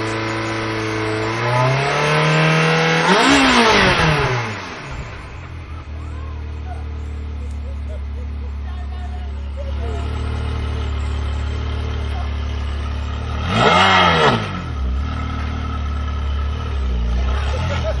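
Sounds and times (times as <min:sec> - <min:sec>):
sports car engine idling and revving: 0:00.0 - 0:18.0.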